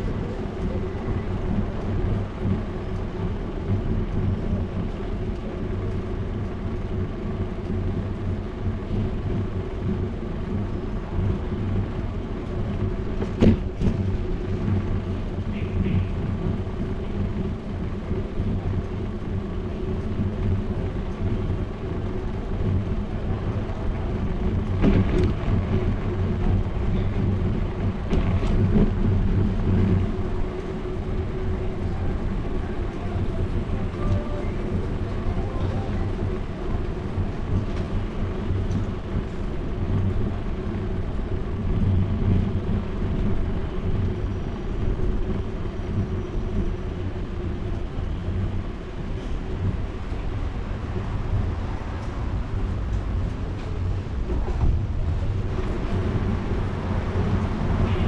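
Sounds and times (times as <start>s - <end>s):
bicycle tyres rumbling on tiles: 0.0s - 58.0s.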